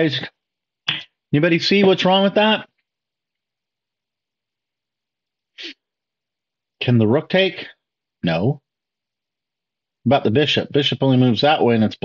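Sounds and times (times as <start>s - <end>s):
short breath burst: 5.6s - 5.9s.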